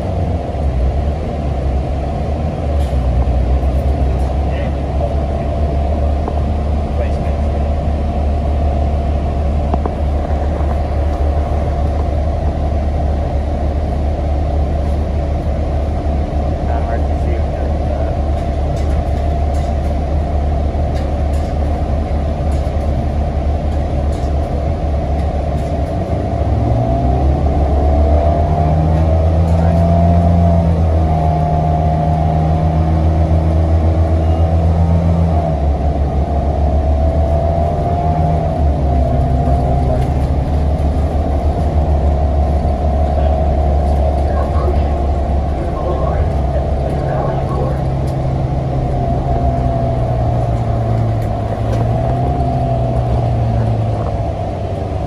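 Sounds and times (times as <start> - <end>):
bus engine and road rumble: 0.0 - 55.0.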